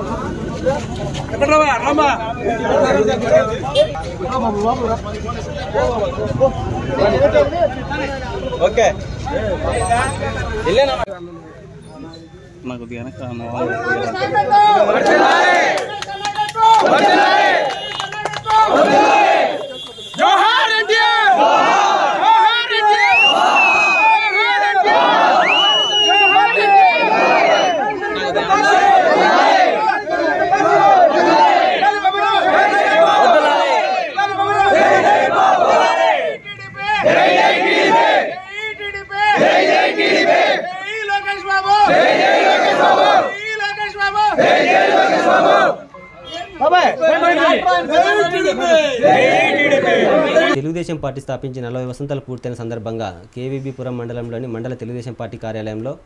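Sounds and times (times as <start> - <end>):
group of men chanting back: 14.5 - 38.5, 39.2 - 40.8, 41.7 - 43.5, 44.1 - 45.9, 46.8 - 50.6
man shouting a line: 20.2 - 21.4
men shouting in unison: 20.2 - 36.4.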